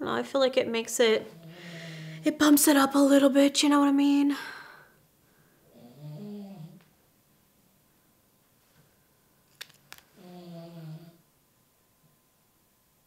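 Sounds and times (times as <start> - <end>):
dog snoring: 5.7 - 6.8, 10.2 - 11.2.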